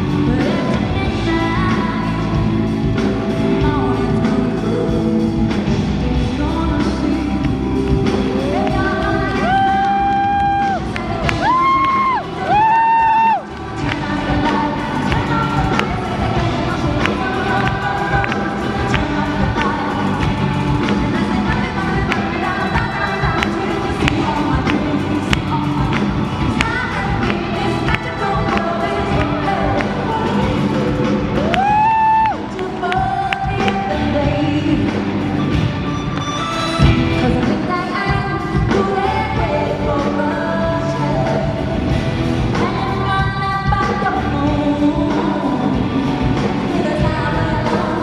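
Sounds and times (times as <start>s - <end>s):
band with steady beat: 0.0s - 48.0s.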